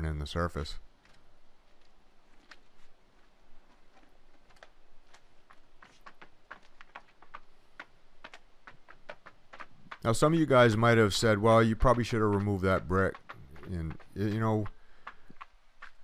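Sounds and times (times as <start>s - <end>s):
rubber mats clicking and tapping: 0.9s - 16.0s.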